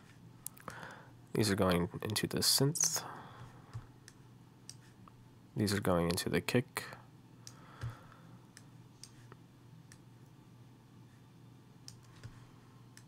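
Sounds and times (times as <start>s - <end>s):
computer mouse clicks: 3.7s - 4.9s, 7.4s - 10.0s, 11.8s - 13.0s.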